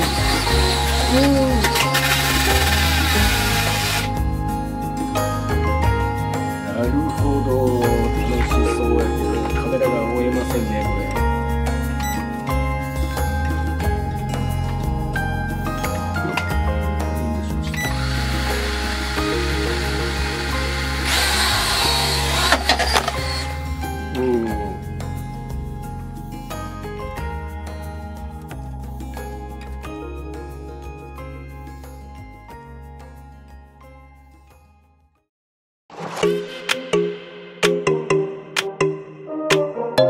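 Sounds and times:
quadcopter propellers whirring: 0:00.0 - 0:04.1, 0:17.8 - 0:23.6
pop music: 0:00.0 - 0:32.8, 0:36.2 - 0:40.0.

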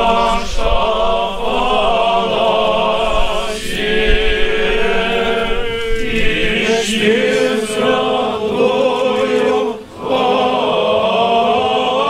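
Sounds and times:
church choir chanting: 0:00.0 - 0:12.0.

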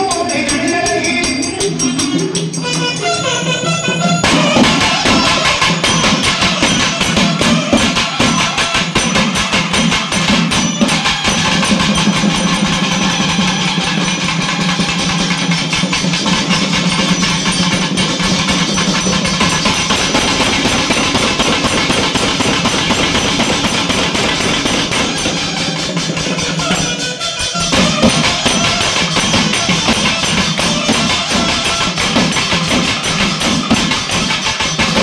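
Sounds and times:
loud music with fast drumming: 0:04.2 - 0:35.0.

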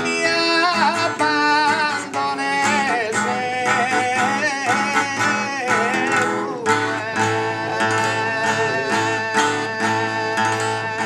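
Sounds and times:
acoustic guitar plucking: 0:00.0 - 0:11.0
man singing in high voice: 0:00.0 - 0:11.0.

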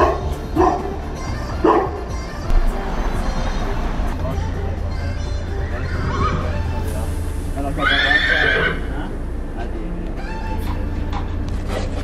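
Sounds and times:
horse whinnying: 0:05.8 - 0:06.6, 0:07.8 - 0:08.9.

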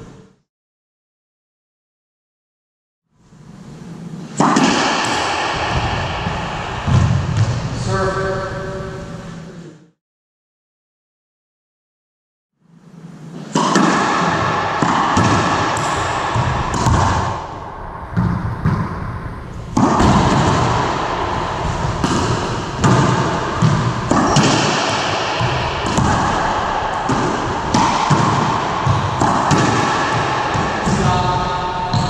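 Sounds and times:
racquetball hitting walls: 0:03.8 - 0:08.0, 0:12.7 - 0:32.0.

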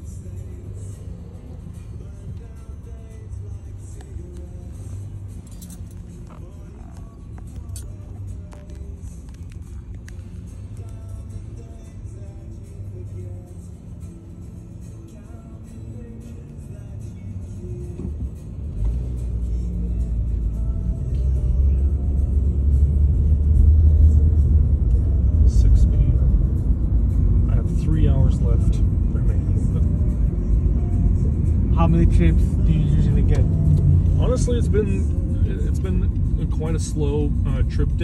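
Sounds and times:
car cabin rumble: 0:00.0 - 0:11.2, 0:17.3 - 0:38.0
faint music: 0:00.0 - 0:38.0.

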